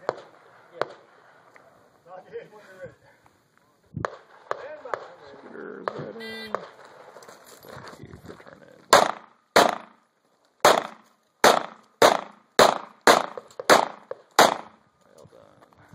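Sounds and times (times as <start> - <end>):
handgun shots with echo: 8.9 - 10.0, 10.6 - 14.8.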